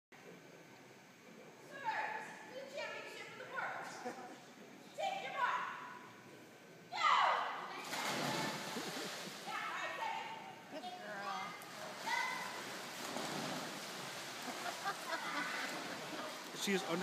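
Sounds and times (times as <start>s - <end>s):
swimmers splashing: 7.7s - 10.6s, 11.4s - 17.0s.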